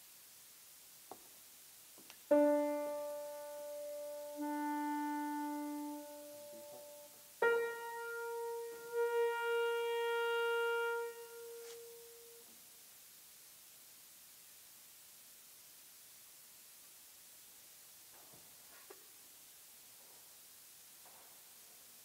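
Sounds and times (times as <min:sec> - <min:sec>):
grand piano slow held notes: 0:02.3 - 0:12.5.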